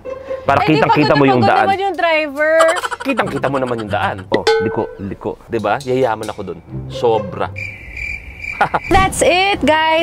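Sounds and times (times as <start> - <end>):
cricket chirping: 7.5 - 9.1.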